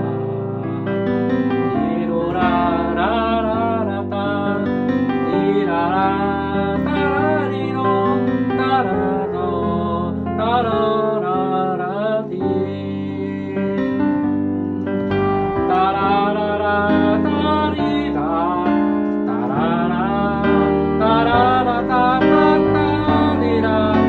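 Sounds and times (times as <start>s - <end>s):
piano chords: 0.0s - 24.0s
wordless singing: 1.6s - 14.0s, 15.6s - 24.0s.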